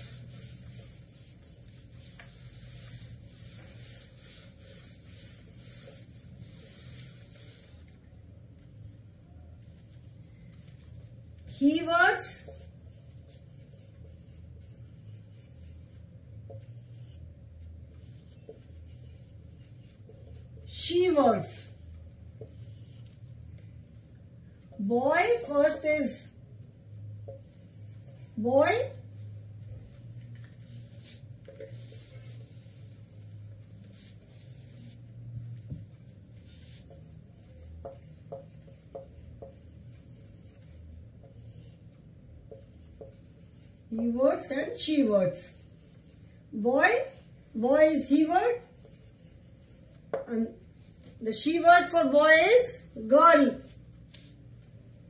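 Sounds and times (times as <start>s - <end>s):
marker writing on whiteboard: 0.0s - 8.7s, 9.4s - 54.5s.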